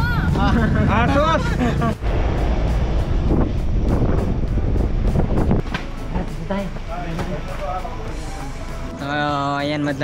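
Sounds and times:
vehicle rumble: 0.0s - 9.0s
wind rushing over microphone: 2.0s - 5.8s.

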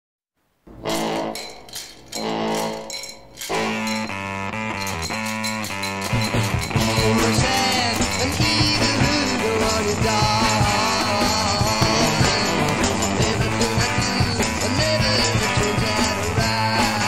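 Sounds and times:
rhythmic band music: 0.7s - 17.0s.

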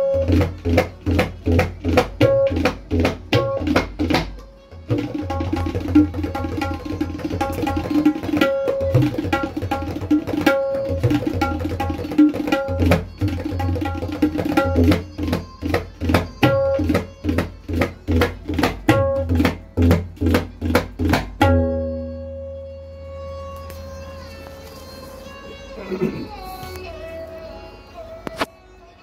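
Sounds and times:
tabla played by hand: 0.0s - 27.6s, 28.2s - 28.6s
tabla stroke ringing tone: 3.3s - 26.4s.

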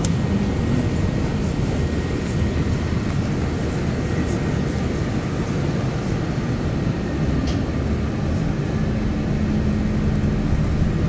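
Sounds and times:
bus engine low rumble: 0.0s - 11.0s.

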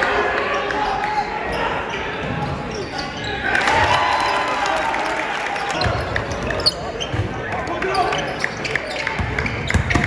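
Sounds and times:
chatter of spectators: 0.0s - 10.0s.

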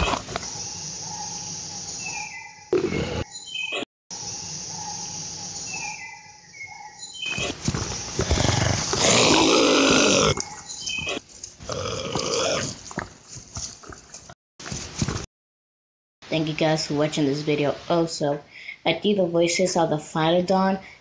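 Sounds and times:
monster roars: 8.2s - 10.4s, 11.6s - 12.8s.

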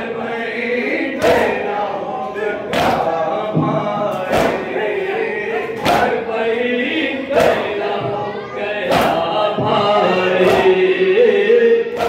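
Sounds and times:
men chanting in unison: 0.0s - 12.0s
hands slapping on chests: 2.7s - 3.1s, 4.1s - 4.7s, 5.8s - 6.2s, 7.3s - 7.7s, 8.9s - 9.3s, 10.4s - 10.8s.

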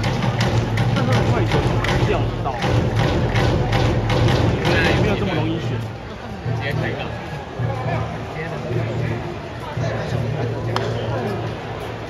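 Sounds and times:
stadium music with fast drumbeat: 0.0s - 11.6s
crowd voices: 0.0s - 12.0s.

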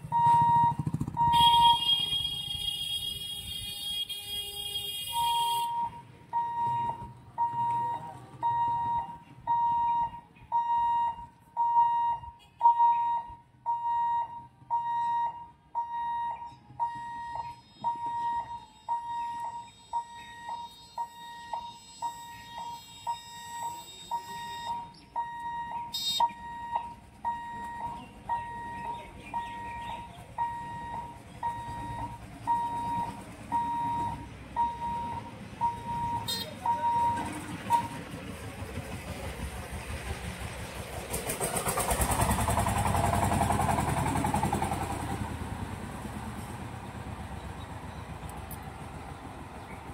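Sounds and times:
low rumble of idling vehicles: 0.0s - 49.9s
level crossing warning beeps: 0.1s - 2.0s, 5.1s - 38.1s.

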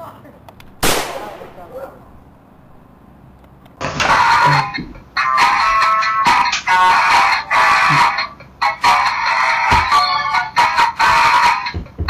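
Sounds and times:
loud bang: 0.8s - 2.1s.

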